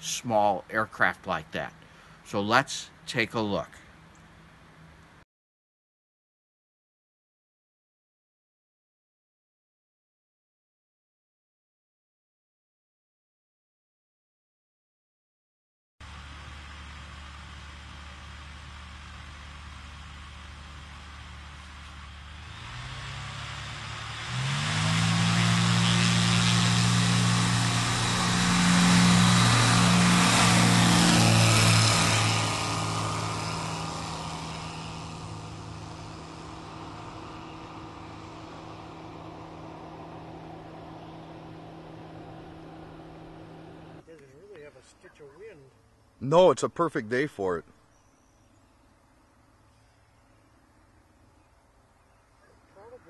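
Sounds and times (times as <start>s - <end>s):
propeller aircraft engine: 0.8s - 3.0s, 16.0s - 44.0s.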